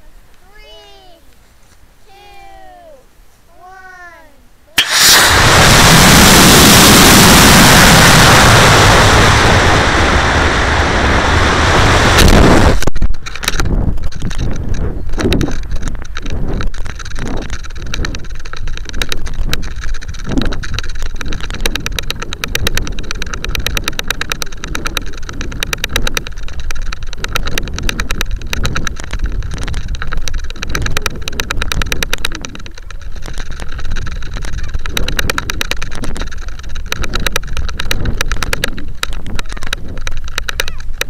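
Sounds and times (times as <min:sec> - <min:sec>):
high-pitched whine: 0:04.8 - 0:12.8
wind buffeting camera: 0:04.8 - 0:41.0
rapid clicking rattle: 0:13.1 - 0:41.0.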